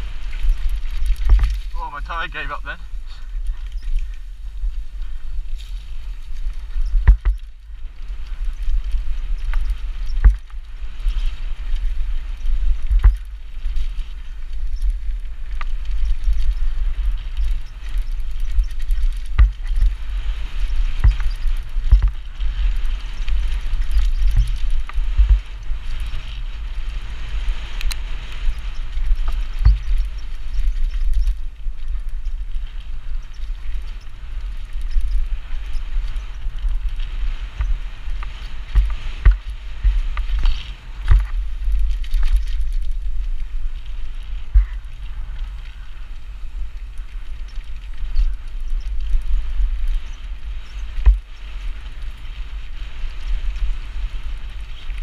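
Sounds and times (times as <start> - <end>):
bike knocking and rattling: 0.0 - 55.0
bike tyres rumbling on dirt: 0.0 - 55.0.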